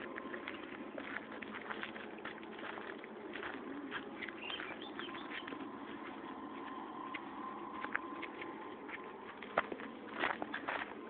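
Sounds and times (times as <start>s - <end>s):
bird calling: 3.4s - 5.7s.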